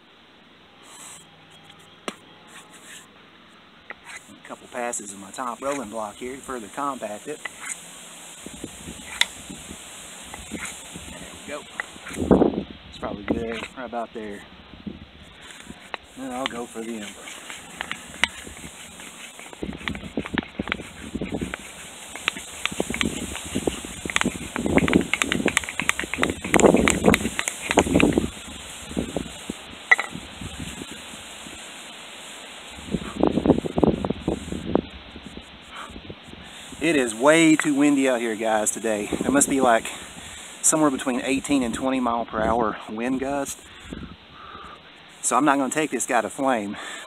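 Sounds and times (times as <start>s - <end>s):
rough rustling: 2.1s - 3.1s, 3.9s - 42.1s
wooden block rubbing: 2.1s - 3.1s, 3.9s - 12.4s, 13.2s - 13.8s, 15.4s - 31.7s, 36.6s - 41.6s
wind noise on microphone: 4.2s - 44.8s
wood knocking on stone: 15.9s - 28.3s, 29.9s - 30.2s.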